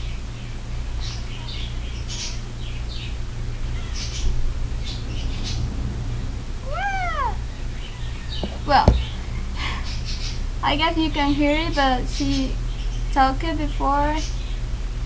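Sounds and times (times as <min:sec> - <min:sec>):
cat meowing: 0:06.6 - 0:08.0.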